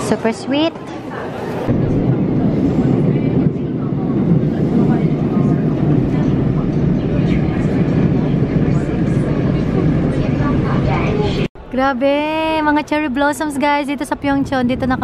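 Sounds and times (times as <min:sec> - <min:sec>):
faint passenger voices: 0:00.0 - 0:11.5
subway train rumbling on track: 0:00.0 - 0:15.0.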